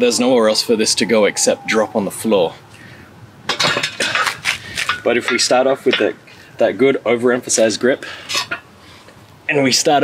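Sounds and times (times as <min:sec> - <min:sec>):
metal handles clinking and rattling: 0:03.5 - 0:06.2.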